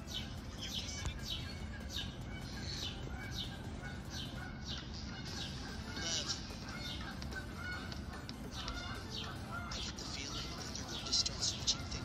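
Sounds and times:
high chirping squeaks: 0.0s - 12.0s.

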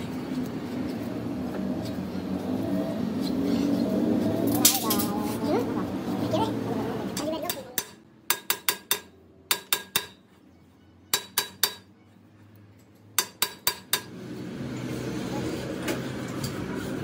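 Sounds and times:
hammer striking steel ring: 7.8s - 10.3s, 11.1s - 12.0s, 13.2s - 14.1s.

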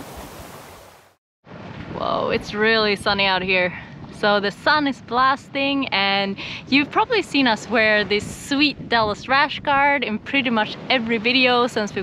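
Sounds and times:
surf washing onto beach: 0.0s - 2.8s
wind noise on microphone: 1.5s - 12.0s.

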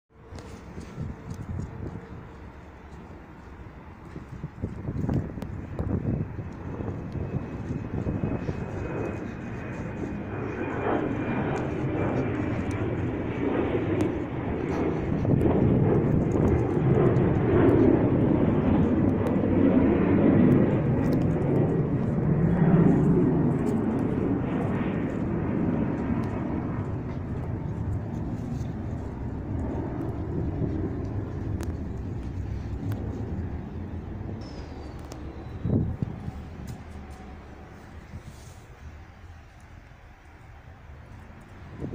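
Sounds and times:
distant engine noise: 0.1s - 41.9s.

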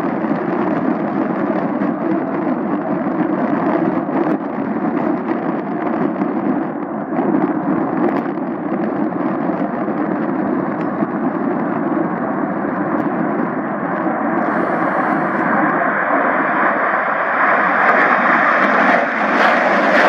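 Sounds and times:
loud crackling jet engines: 0.0s - 20.0s.

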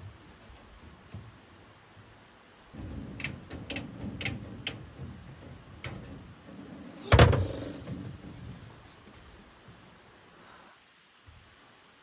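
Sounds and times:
wire mesh rustling: 0.0s - 9.8s.

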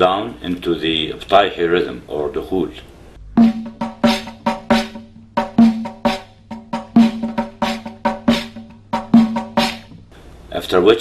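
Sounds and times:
drum strokes with ringing tone: 3.2s - 10.1s.

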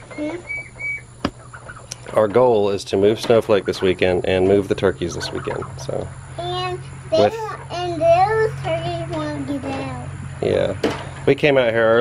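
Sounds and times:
poultry peeping: 0.0s - 10.7s.

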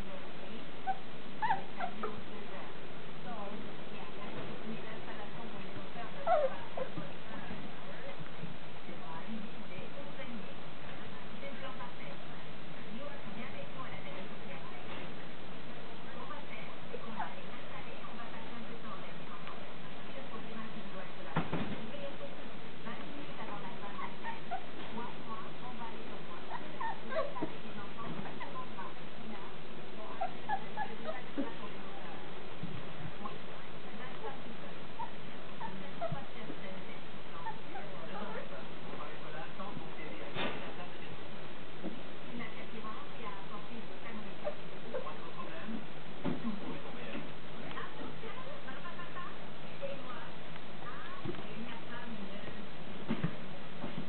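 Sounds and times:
puppies yipping and whimpering: 0.9s - 2.0s, 6.2s - 6.9s, 26.5s - 27.5s.

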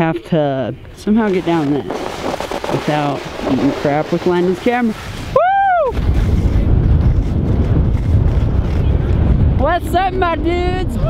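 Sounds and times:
wind buffeting microphone: 0.8s - 11.0s
skis running over snow: 1.2s - 9.3s.

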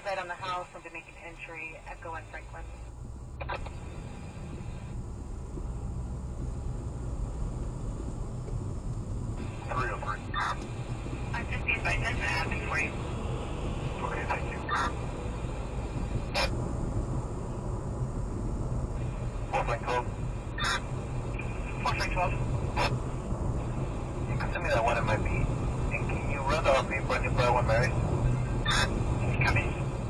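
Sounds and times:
car road and engine rumble: 0.0s - 30.0s
police radio chatter: 9.4s - 10.7s, 11.3s - 13.0s, 13.9s - 15.0s, 16.3s - 16.6s, 19.4s - 23.0s, 23.7s - 30.0s.

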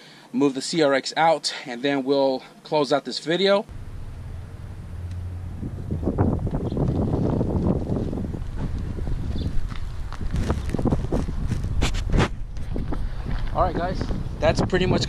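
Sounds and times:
wind rumbling on microphone: 3.7s - 15.0s.

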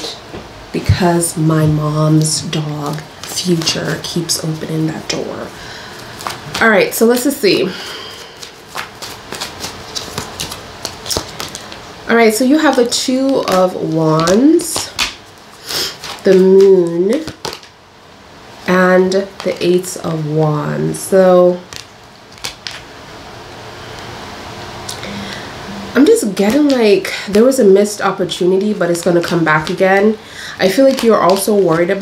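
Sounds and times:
room noise hiss: 0.0s - 32.0s
cards being shuffled: 1.7s - 17.8s, 21.6s - 22.9s, 26.0s - 32.0s.

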